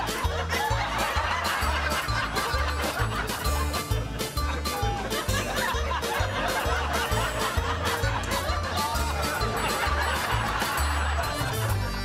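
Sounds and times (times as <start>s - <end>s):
laugh track: 0.0s - 12.0s
upbeat music with bass beat: 0.0s - 12.0s.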